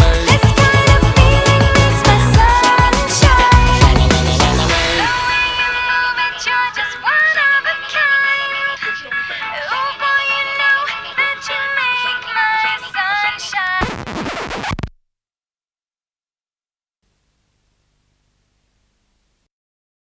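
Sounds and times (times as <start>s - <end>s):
pop song with gliding vocals: 0.0s - 13.9s
noisy hiss: 17.0s - 19.5s.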